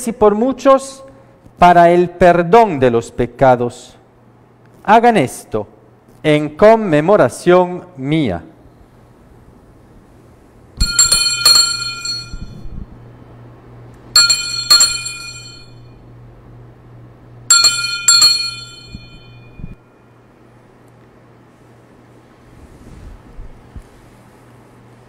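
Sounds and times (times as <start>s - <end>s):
low steady hum: 0.0s - 25.0s
altar bells ringing: 10.8s - 12.7s, 14.2s - 16.0s, 17.5s - 19.8s.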